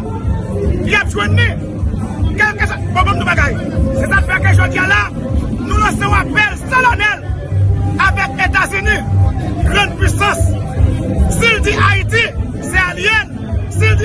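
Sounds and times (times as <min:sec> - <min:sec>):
background music: 0:00.0 - 0:14.0
crowd babble: 0:00.0 - 0:14.0
man speaking excitedly: 0:00.9 - 0:01.6, 0:02.3 - 0:07.2, 0:08.0 - 0:10.6, 0:11.3 - 0:14.0.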